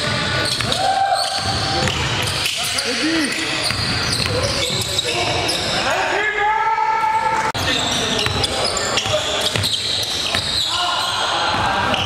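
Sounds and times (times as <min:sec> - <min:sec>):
basketball bouncing on gym floor: 0:00.0 - 0:02.4, 0:03.6 - 0:05.0, 0:08.2 - 0:10.6
players' voices echoing: 0:00.0 - 0:12.0.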